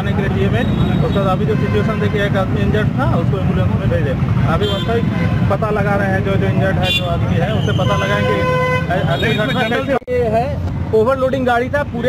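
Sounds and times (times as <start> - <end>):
street traffic rumble: 0.0 - 12.0
vehicle horn honk: 4.6 - 5.5, 6.8 - 10.0.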